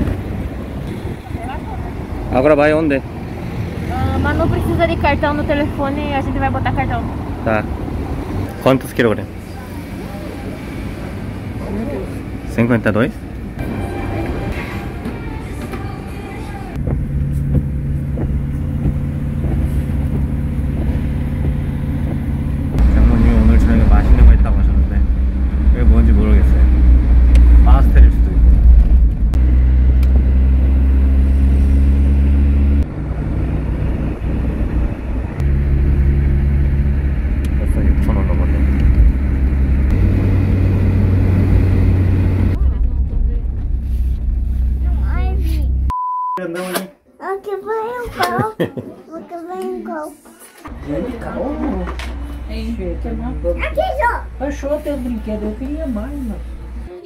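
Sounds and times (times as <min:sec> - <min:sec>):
car interior rumble: 0:15.1 - 0:45.9
short steady beep: 0:45.9 - 0:46.5.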